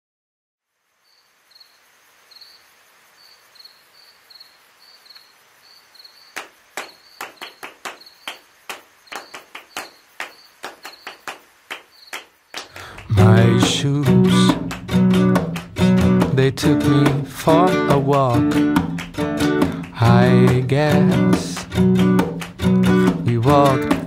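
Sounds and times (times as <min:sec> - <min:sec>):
faint hiss: 0:00.6 - 0:14.3
crickets chirping: 0:00.7 - 0:24.0
sharp clicks: 0:06.4 - 0:13.8.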